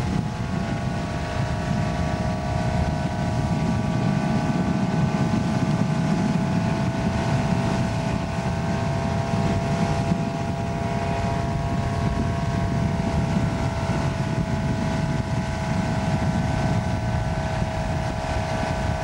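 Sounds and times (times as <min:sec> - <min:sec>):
boat engine droning: 0:00.0 - 0:19.0
wind buffeting microphone: 0:00.0 - 0:19.0.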